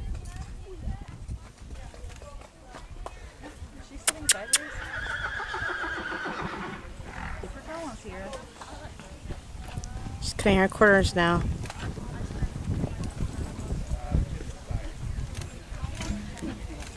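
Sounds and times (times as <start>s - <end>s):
sharp clicks: 4.1s - 4.7s
horse whinnying: 4.1s - 7.4s.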